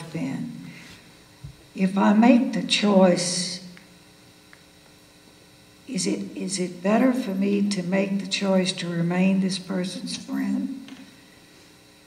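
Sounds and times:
woman speaking: 0:00.0 - 0:00.7, 0:01.8 - 0:03.7, 0:05.9 - 0:10.8
faint electrical hum: 0:00.0 - 0:12.0.

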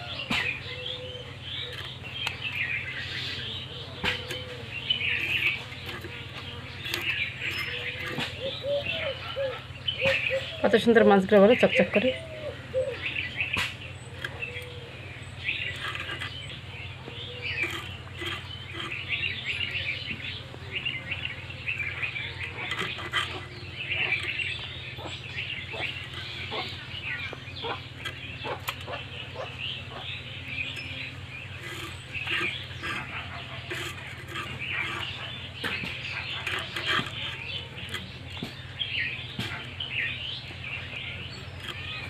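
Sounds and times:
small birds chirping: 0:00.0 - 0:42.0
steady low hum: 0:00.0 - 0:42.0
fish scaling clicks and scrapes: 0:01.5 - 0:09.1, 0:15.4 - 0:38.6.

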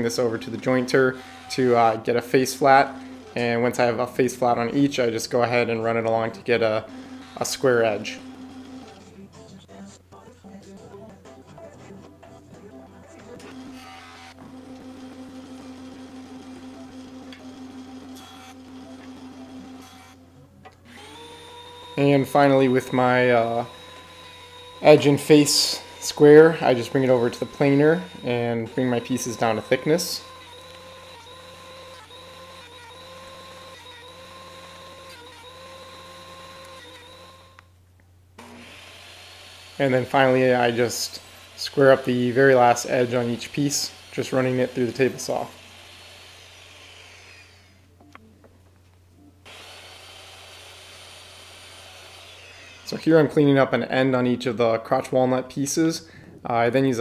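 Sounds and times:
jointer motor whine: 0:00.0 - 0:09.1, 0:13.4 - 0:37.7, 0:38.4 - 0:47.9, 0:49.5 - 0:53.5.

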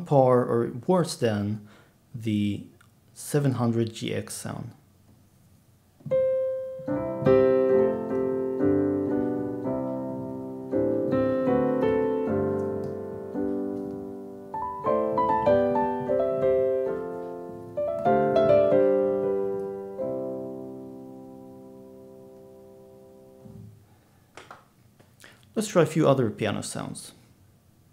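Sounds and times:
slow piano chords: 0:06.0 - 0:23.8.

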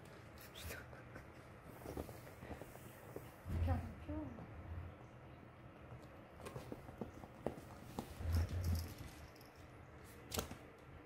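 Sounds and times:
paws scrabbling on fabric: 0:01.5 - 0:03.4.

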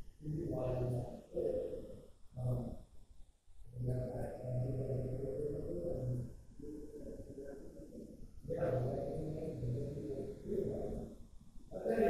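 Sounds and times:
man talking low and muffled: 0:00.0 - 0:02.7, 0:03.8 - 0:11.1, 0:11.7 - 0:12.0.

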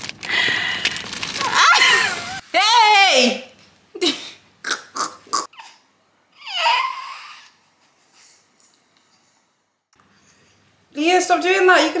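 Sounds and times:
infant fussing and crying: 0:06.4 - 0:07.6.

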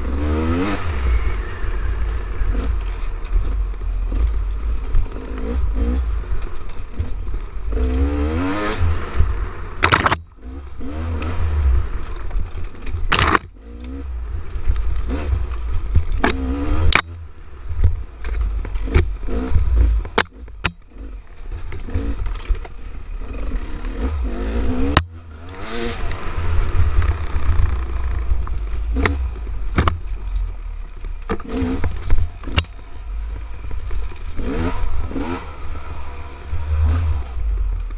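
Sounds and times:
dirt bike engine revving: 0:00.0 - 0:30.0, 0:31.4 - 0:37.7
sharp clacks and knocks: 0:09.8 - 0:10.3, 0:17.8 - 0:22.8, 0:26.9 - 0:30.1.

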